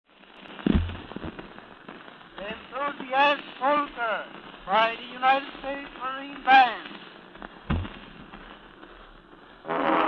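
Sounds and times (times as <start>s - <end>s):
steady hiss: 0.1s - 10.0s
dull thump: 0.6s - 1.4s, 7.7s - 8.1s.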